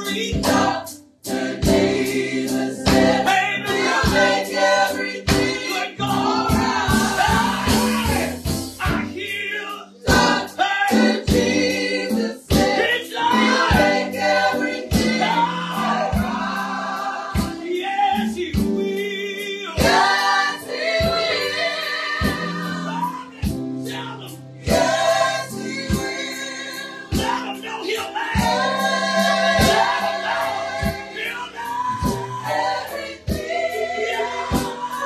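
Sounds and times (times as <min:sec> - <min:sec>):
group singing gospel song: 0:00.0 - 0:35.0
sharp rhythmic strikes: 0:00.0 - 0:35.0.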